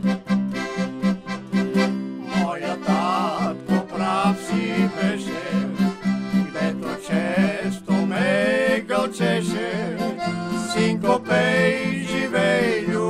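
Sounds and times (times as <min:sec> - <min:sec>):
accordion folk melody: 0:00.0 - 0:13.0
guitar: 0:00.0 - 0:13.0.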